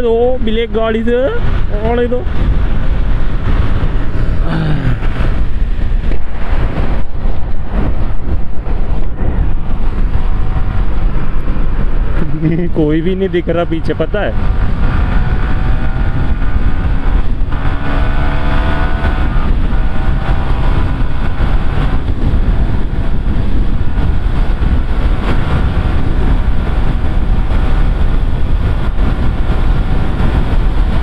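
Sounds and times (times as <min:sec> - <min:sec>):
wind noise on microphone: 0:00.0 - 0:31.0
motorcycle engine accelerating: 0:01.0 - 0:31.0.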